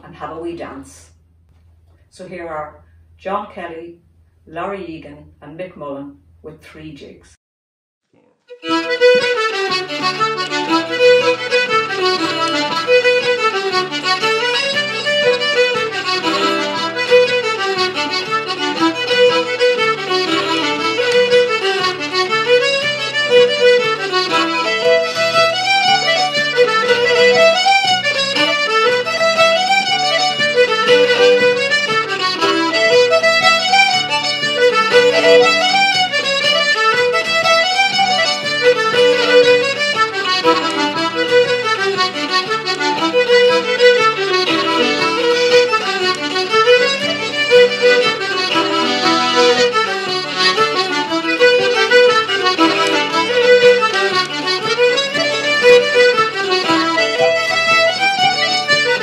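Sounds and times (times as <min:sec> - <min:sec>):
fiddle and accordion melody: 0:08.5 - 0:59.0
acoustic guitar chords: 0:08.6 - 0:59.0.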